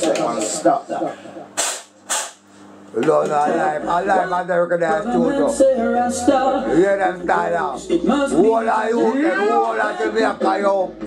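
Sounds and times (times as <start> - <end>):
short sharp hissing bursts: 1.6 - 2.4.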